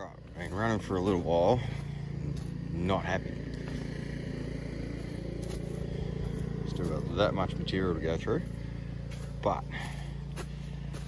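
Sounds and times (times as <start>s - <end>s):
cement mixer humming: 0.0s - 11.0s.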